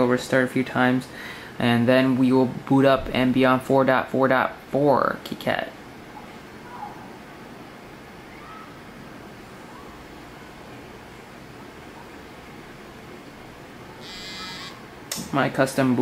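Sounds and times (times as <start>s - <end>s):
faint room tone hiss: 0.0s - 16.0s.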